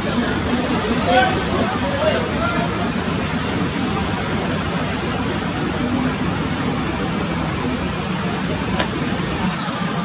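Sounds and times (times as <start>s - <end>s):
low outdoor background rush: 0.0s - 10.0s
faint indistinct voices: 8.2s - 10.0s.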